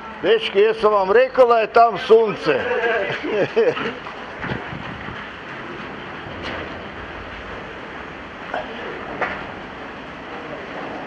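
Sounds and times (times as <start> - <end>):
steady rushing noise: 0.0 - 11.0
person laughing: 2.6 - 4.0.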